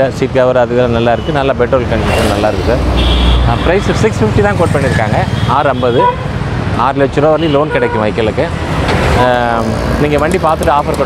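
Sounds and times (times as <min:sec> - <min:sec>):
man talking: 0:00.0 - 0:08.6, 0:09.2 - 0:11.0
road traffic rumble: 0:00.0 - 0:11.0.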